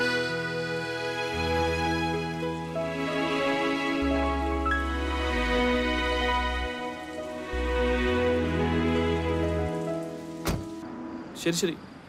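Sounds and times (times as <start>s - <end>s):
heavy rain: 0.0s - 10.8s
background music chords: 0.0s - 11.1s.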